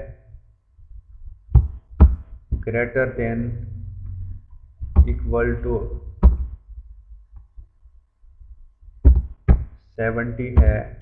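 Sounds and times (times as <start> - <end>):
low rumble: 2.6 - 7.3.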